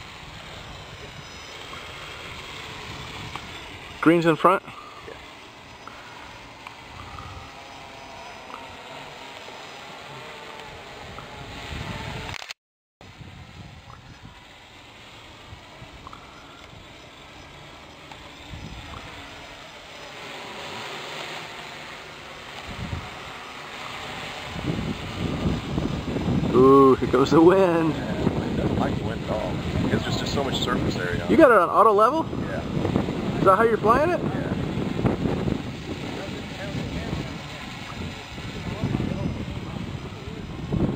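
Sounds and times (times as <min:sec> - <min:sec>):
drone propellers whirring: 0:00.0 - 0:40.9.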